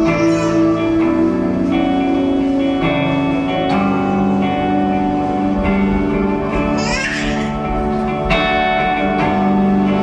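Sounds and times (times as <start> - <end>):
electric guitar chords: 0.0 - 10.0
live band playing: 0.0 - 10.0.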